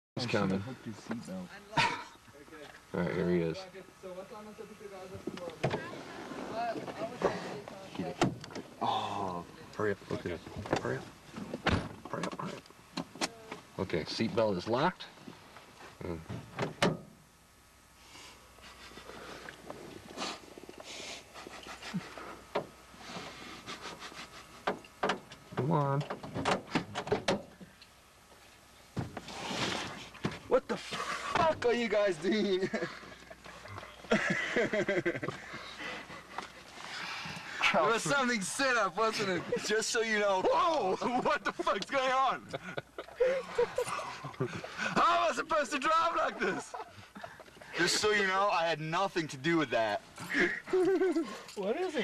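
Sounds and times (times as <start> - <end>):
quiet car cabin noise: 4.0 - 17.3, 18.4 - 52.0.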